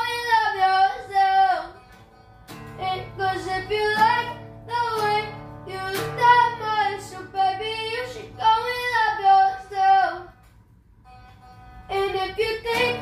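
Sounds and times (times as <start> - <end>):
boy singing: 0.0 - 1.8, 2.8 - 10.4, 11.9 - 13.0
strummed acoustic guitar: 0.0 - 13.0.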